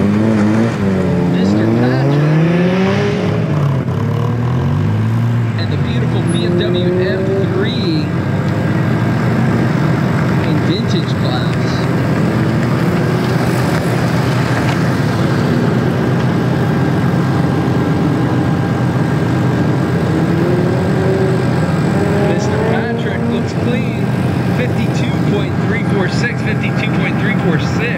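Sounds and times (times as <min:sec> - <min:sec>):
sports car engine revving: 0:00.0 - 0:27.9.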